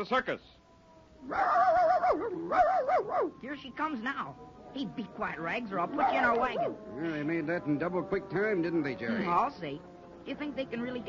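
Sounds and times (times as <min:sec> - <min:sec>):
dog howling: 0:00.8 - 0:04.8, 0:05.4 - 0:07.0.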